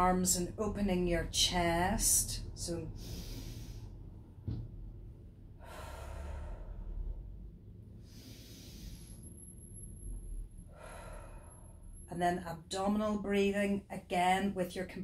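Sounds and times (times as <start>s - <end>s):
woman breathing deeply: 2.9s - 4.2s, 5.4s - 9.5s, 10.6s - 12.1s.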